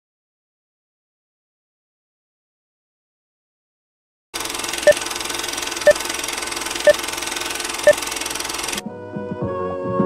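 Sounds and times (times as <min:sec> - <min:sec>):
film projector rattle and hiss: 0:04.4 - 0:08.8
music: 0:08.7 - 0:10.0.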